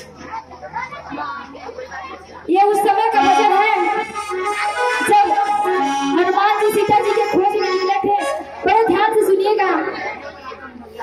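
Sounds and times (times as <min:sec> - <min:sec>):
held instrumental tones: 0:02.6 - 0:09.5.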